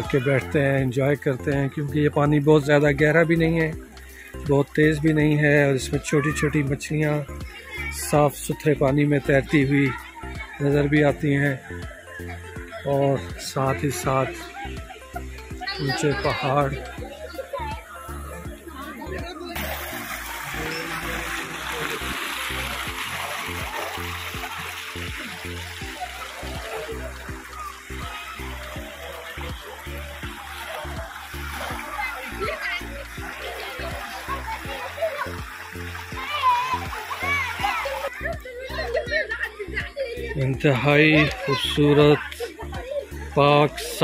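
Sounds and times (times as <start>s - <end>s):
voices of people and children: 0.0s - 44.0s
music with steady beat: 2.2s - 10.8s, 14.0s - 43.4s
stream water splashing: 15.3s - 39.0s.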